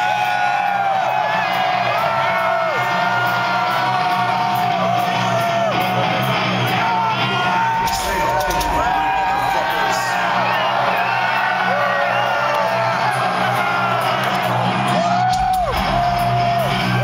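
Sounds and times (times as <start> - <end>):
fans yelling and whooping: 0.0 - 17.0.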